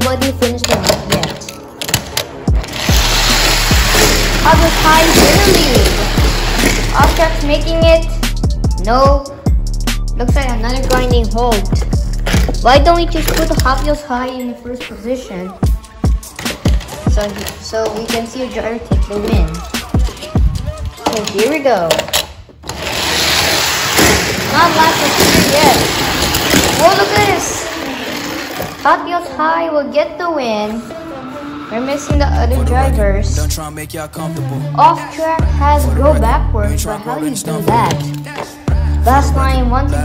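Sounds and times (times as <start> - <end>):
background music with bass kicks: 2.5 - 14.0, 15.6 - 17.3, 37.6 - 40.0
toy cars whirring on track: 2.6 - 7.4, 22.6 - 28.8.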